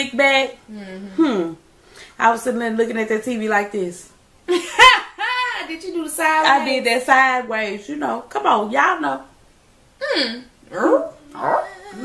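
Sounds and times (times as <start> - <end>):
woman speaking: 2.2 - 4.1, 5.1 - 9.3, 11.3 - 12.0.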